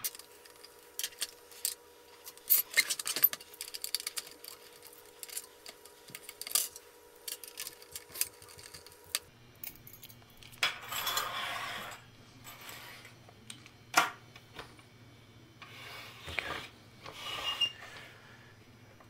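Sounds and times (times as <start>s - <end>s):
short scrape: 15.6s - 18.2s.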